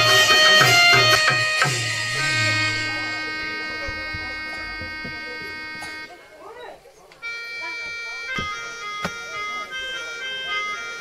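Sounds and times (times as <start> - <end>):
sharp percussive stroke: 0.0 - 6.1
reedy melody of sustained notes: 0.0 - 11.0.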